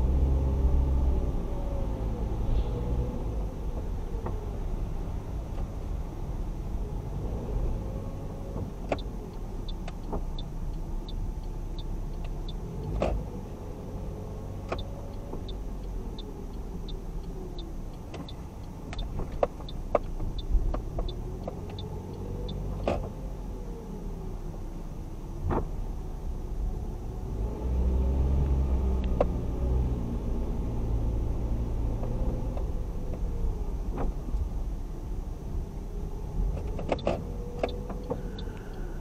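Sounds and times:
car engine and road rumble: 0:00.0 - 0:39.0.

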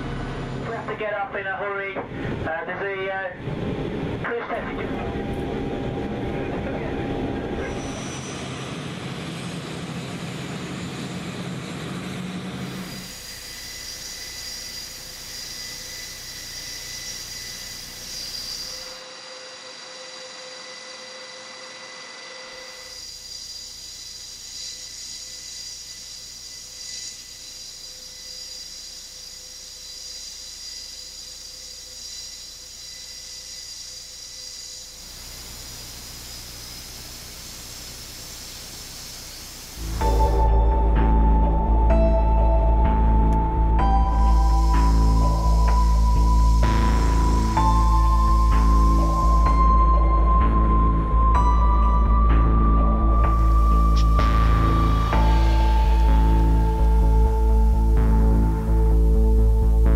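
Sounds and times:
high engine and propeller whine: 0:00.0 - 0:59.9
low engine drone: 0:00.0 - 0:59.9.

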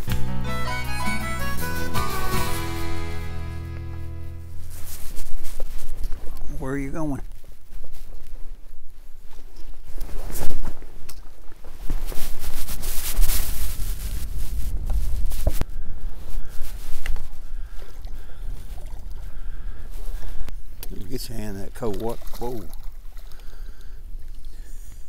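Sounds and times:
wind on microphone: 0:11.6 - 0:20.8
water splashing: 0:20.8 - 0:24.4.

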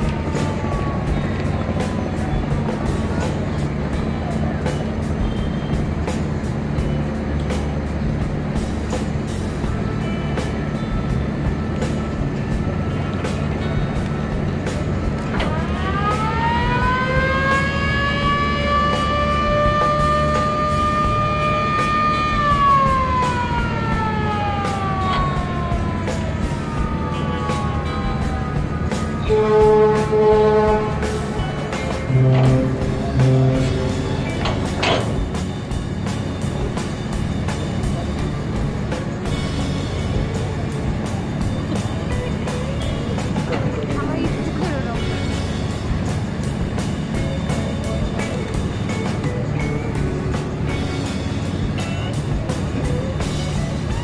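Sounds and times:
motor siren wailing: 0:00.0 - 0:06.2, 0:10.7 - 0:35.8
diesel engines droning: 0:00.0 - 0:54.0.

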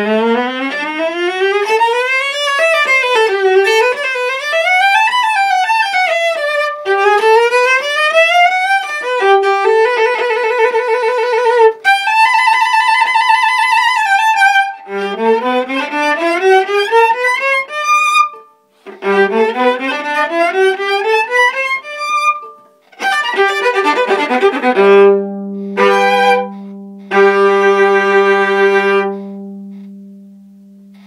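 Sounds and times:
solo viola playing: 0:00.0 - 0:30.3.

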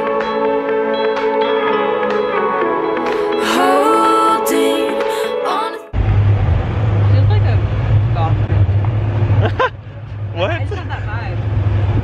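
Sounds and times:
golf cart driving: 0:06.0 - 0:12.0.

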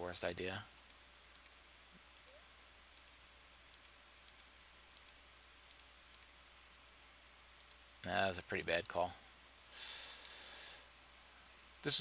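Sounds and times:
computer mouse clicks: 0:00.7 - 0:06.4, 0:07.6 - 0:07.8.

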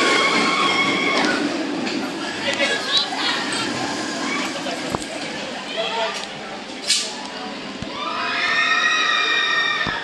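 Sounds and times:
roller coaster train passing: 0:00.0 - 0:10.0.

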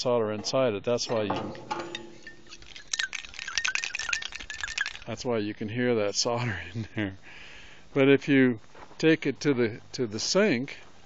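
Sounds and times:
solder ball rattling in metal float: 0:00.4 - 0:05.2.

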